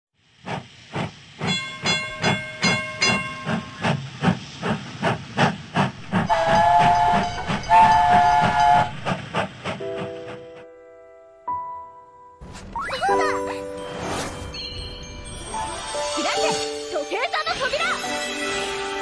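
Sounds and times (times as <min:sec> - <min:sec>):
steam locomotive chuffing: 0:00.2 - 0:10.6
steam whistle blasts: 0:06.1 - 0:09.1.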